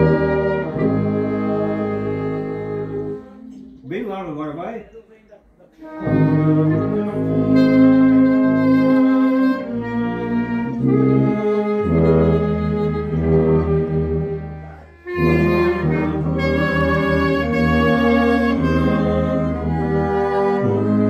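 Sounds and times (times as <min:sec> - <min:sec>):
strings and brass playing chords: 0:00.0 - 0:21.0.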